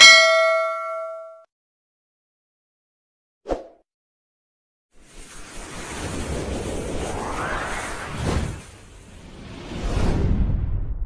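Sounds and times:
notification bell ding: 0.0 - 1.5.

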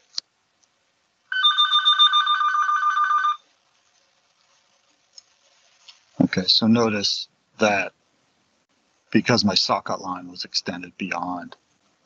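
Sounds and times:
electronic telephone ringing: 1.3 - 3.4.

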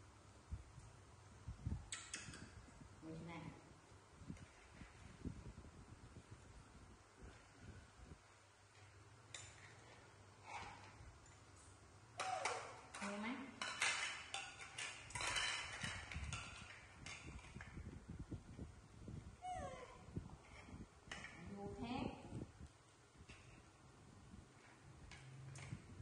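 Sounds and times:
plastic plates clattering on tiles: 12.2 - 17.6.

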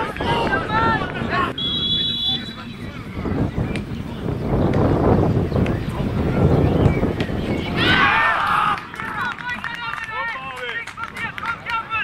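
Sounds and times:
men shouting in celebration: 7.8 - 10.5.

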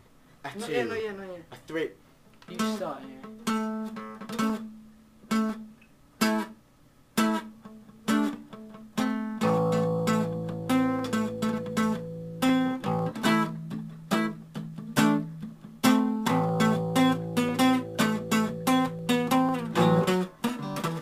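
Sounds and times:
acoustic guitar strumming: 2.6 - 6.6, 7.2 - 21.0
electric guitar chords: 7.6 - 21.0.

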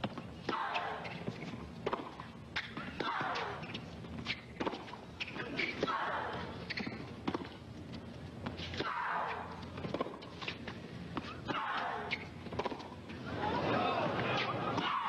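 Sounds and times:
tennis ball bouncing: 0.0 - 6.0, 6.6 - 7.6, 8.4 - 13.0
racket striking tennis ball: 0.5 - 4.9, 6.7 - 7.5.

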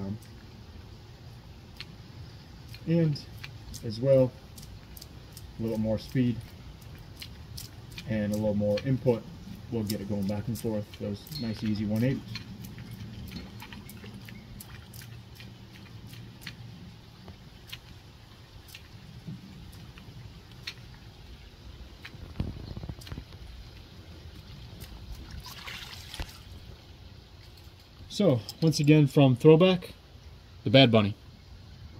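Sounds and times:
lure splashing and gurgling on water: 2.6 - 26.7
loud splash: 25.2 - 26.6.

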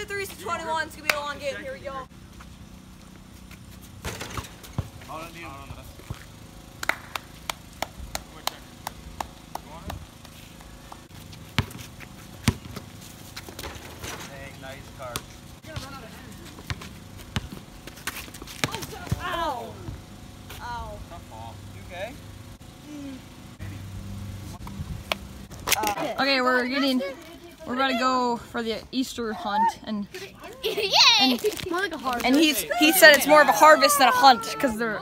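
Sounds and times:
basketball bouncing on asphalt: 2.4 - 14.3, 15.0 - 20.6
faint players' voices: 25.7 - 35.0.

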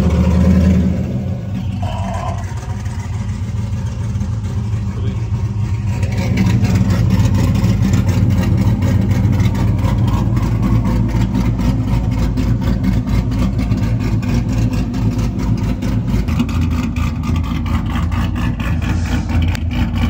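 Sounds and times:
car engine idling choppily: 0.0 - 20.0.

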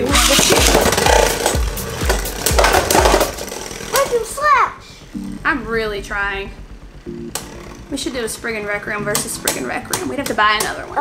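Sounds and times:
spinning tops whirring and scraping: 0.0 - 4.5.

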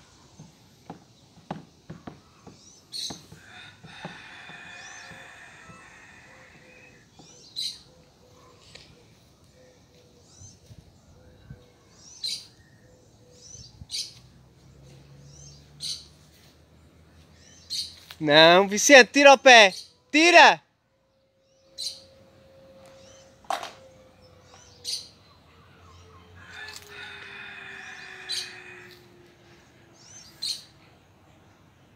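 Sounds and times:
small birds chirping: 0.0 - 6.0, 6.6 - 18.2.

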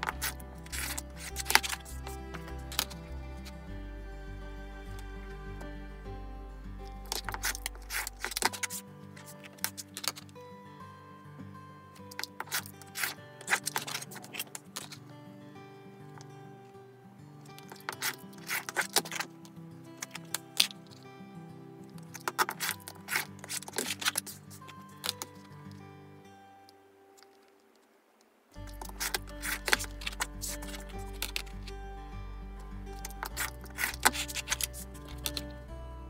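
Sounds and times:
soft background music: 0.0 - 27.6, 28.6 - 36.0.

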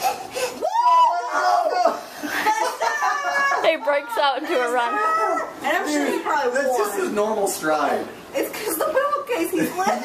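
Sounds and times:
children laughing: 0.0 - 5.6
children squealing and shouting: 0.0 - 5.6.

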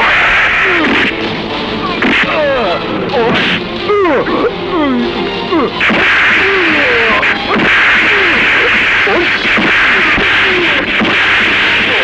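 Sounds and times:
loud hissing whoosh: 5.8 - 12.0
sharp punch hit: 5.8 - 12.0.

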